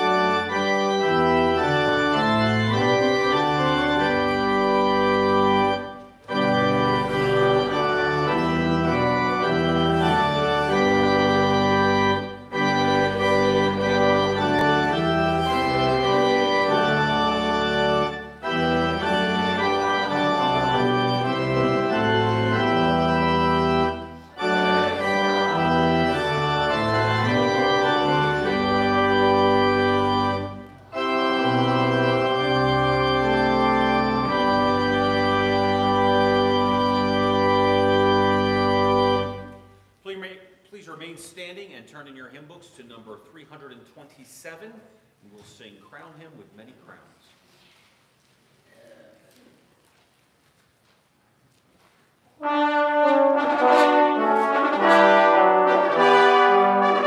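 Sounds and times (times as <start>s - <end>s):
church organ playing held chords: 0.0s - 40.0s, 52.4s - 57.0s.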